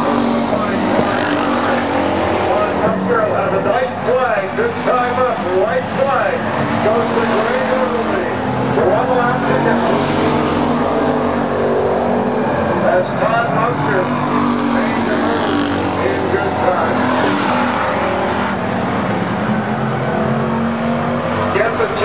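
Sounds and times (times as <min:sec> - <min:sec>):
race car engines: 0:00.0 - 0:22.0.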